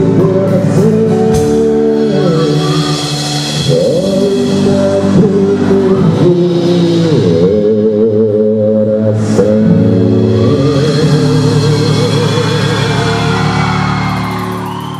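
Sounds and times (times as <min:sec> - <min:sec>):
man singing with vibrato: 0:00.0 - 0:14.2
live band playing: 0:00.0 - 0:14.9.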